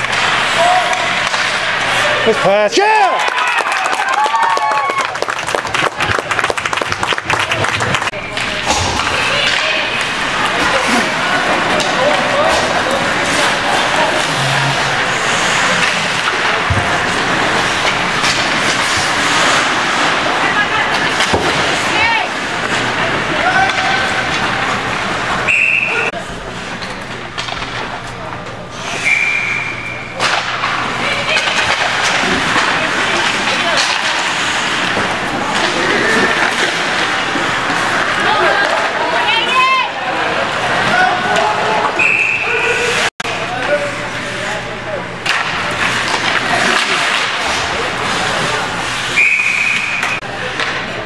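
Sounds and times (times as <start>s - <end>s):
ice hockey play noise: 0.0s - 51.0s
players and spectators voices: 0.0s - 51.0s
short whistle blasts: 49.2s - 50.0s.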